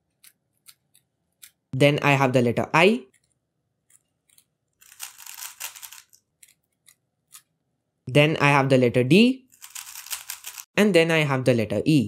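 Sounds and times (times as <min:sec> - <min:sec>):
puzzle cube clicking: 0:04.3 - 0:06.6, 0:09.6 - 0:10.6.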